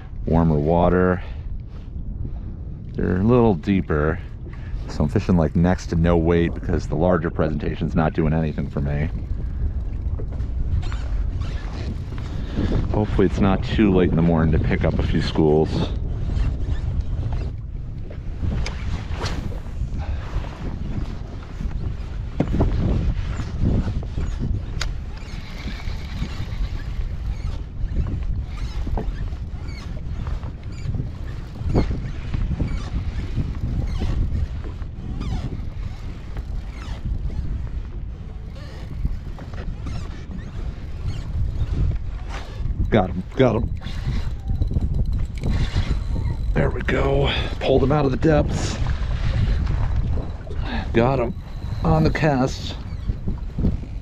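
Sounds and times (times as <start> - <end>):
water lapping against kayak hull: 0.0 - 54.0
wind noise on microphone: 0.0 - 54.0.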